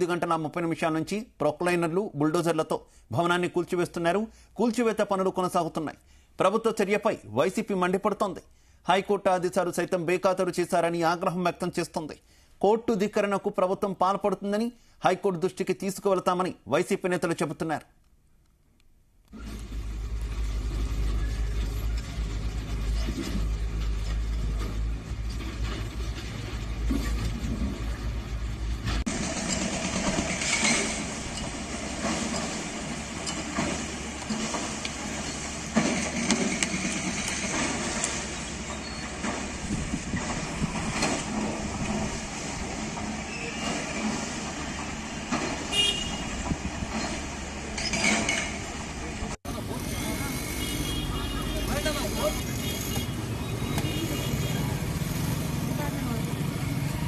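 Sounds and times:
diesel engines rumbling: 19.4s - 57.0s
falling debris: 19.7s - 48.8s.

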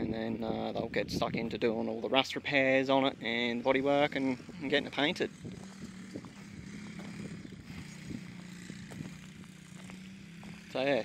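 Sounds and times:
car engine idling: 2.4s - 11.0s
light ticks and crunches: 5.6s - 10.8s.

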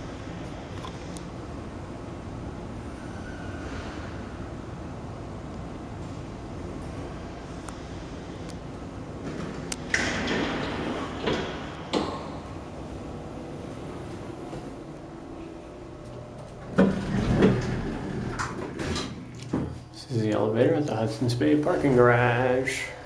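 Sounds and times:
elevator running hum: 0.0s - 23.0s
elevator doors sliding open: 0.7s - 19.9s.

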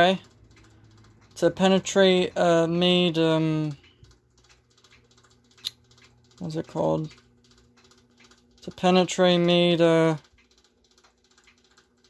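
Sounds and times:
faint irregular clicks: 0.0s - 12.0s.

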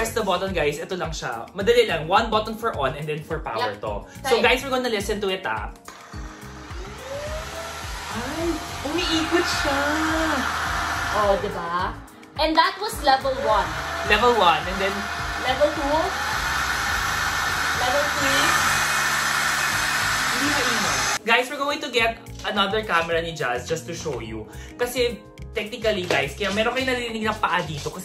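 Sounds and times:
vacuum motor whine: 5.9s - 11.6s, 13.3s - 21.2s.

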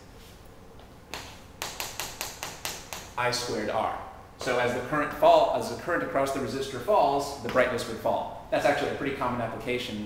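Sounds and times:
chalk tapping on a chalkboard: 1.1s - 3.2s.

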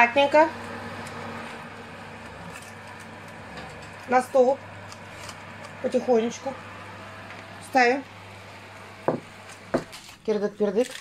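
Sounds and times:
low steady hum: 0.0s - 10.2s
glass dish knocking on wooden board: 9.1s - 9.9s.

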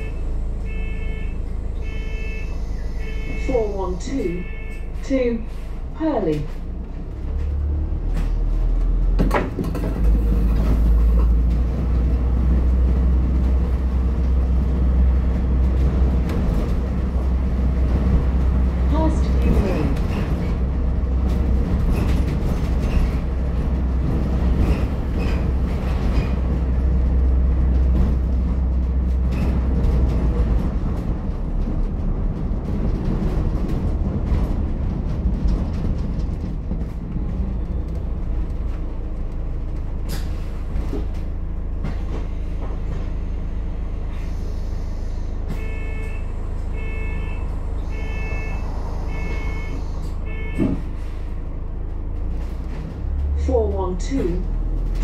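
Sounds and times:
bus drivetrain low rumble: 0.0s - 55.0s.

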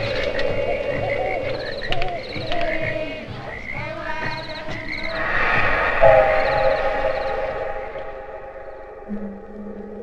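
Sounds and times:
faint high chirps: 4.2s - 10.0s
sustained chord: 6.0s - 10.0s.

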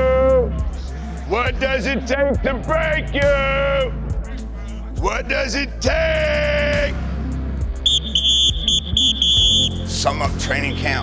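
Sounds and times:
background music with bass: 0.0s - 11.0s
whistle short shrill blasts: 7.9s - 9.8s.

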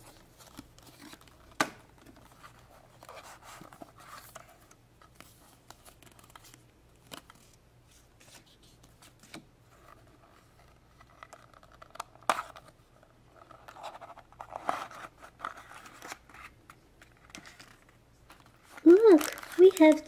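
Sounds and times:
foil rustling and crinkling: 18.5s - 20.0s.

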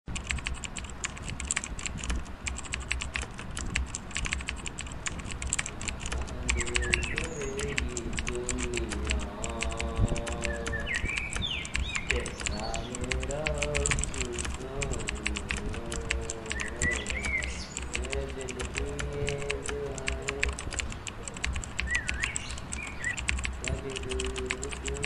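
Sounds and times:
computer keyboard typing: 0.1s - 25.0s.

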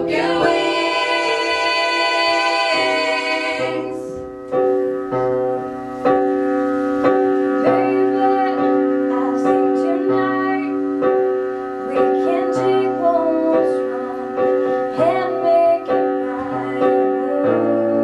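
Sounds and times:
higher melody line: 0.0s - 15.0s
piano keyboard chords: 0.0s - 18.0s.

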